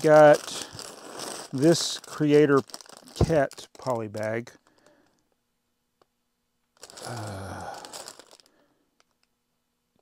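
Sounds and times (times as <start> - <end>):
plastic bag crinkling: 0.0 - 5.2, 6.8 - 9.3.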